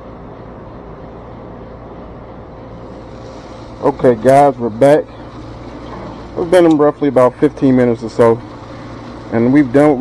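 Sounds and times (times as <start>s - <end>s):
faint steady hum: 0.0s - 10.0s
low outdoor rumble: 0.0s - 10.0s.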